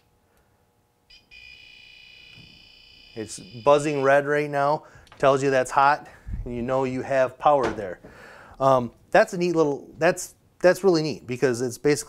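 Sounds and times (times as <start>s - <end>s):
voltage tester beep: 1.1s - 4.3s
high-pitched buzz: 1.1s - 4.6s.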